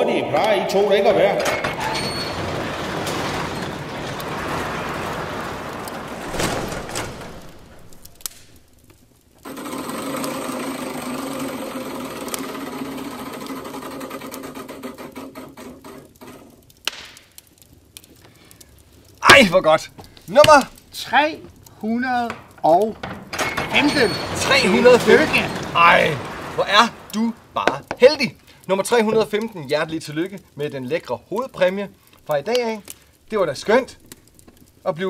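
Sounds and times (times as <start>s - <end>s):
spinning wheel rushing: 9.5s - 15.1s.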